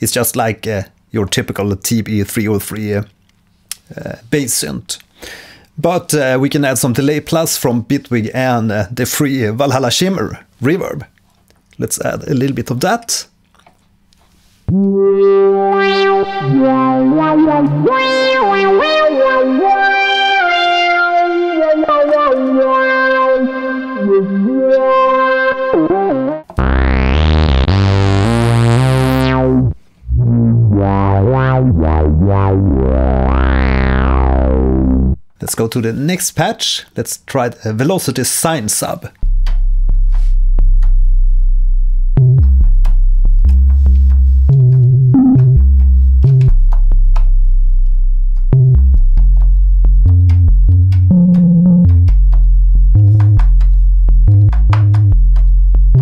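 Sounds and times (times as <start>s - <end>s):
synth lead melody with echoes: 14.7s - 35.3s, 42.2s - 46.6s
sine wave sub-bass note: 26.5s - 35.3s, 39.2s - 56.0s.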